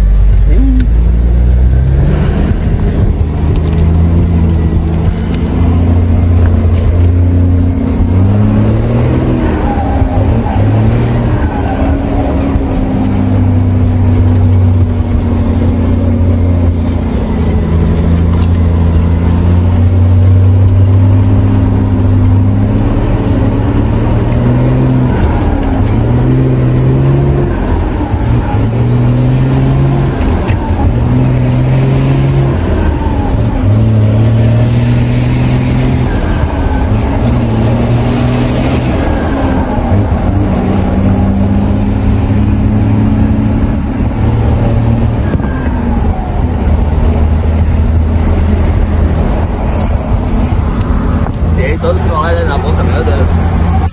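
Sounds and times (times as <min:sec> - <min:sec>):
diesel engine from inside cab: 0:00.0 - 0:53.9.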